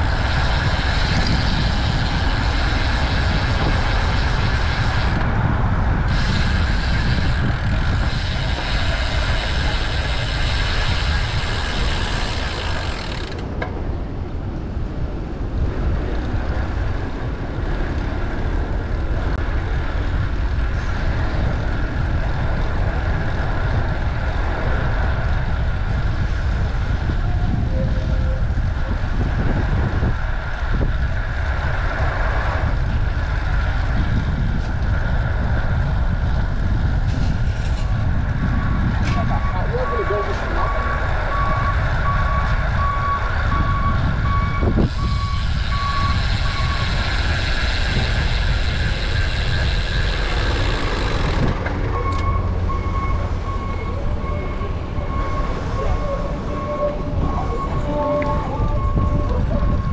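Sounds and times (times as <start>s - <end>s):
street traffic noise: 0.0s - 59.9s
wind rushing over microphone: 0.0s - 59.9s
reversing alarm beeping: 38.5s - 47.0s, 51.8s - 59.9s.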